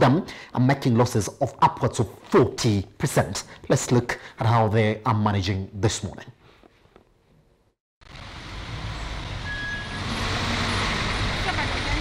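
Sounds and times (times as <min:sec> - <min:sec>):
street traffic rumble: 0:08.0 - 0:12.0.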